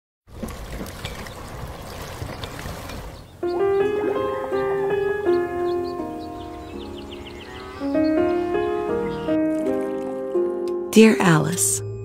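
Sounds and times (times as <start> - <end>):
water splashing onto water wheel: 0.3 - 3.3, 9.3 - 10.4
melodic music: 3.4 - 12.0.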